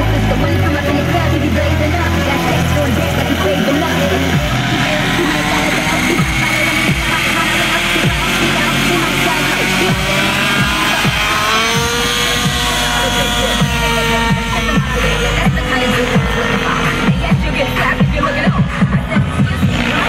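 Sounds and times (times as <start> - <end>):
music: 0.0 - 20.0
rc helicopter engine and rotor: 0.0 - 20.0.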